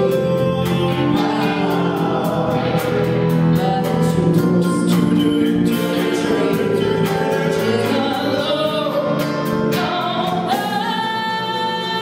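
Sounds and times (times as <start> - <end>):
voices singing long notes: 0.0 - 11.8
live band playing: 0.0 - 12.0.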